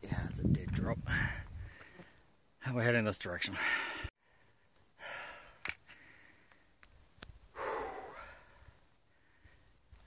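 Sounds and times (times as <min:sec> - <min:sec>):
man breathing hard: 0:03.6 - 0:06.7, 0:07.5 - 0:09.8.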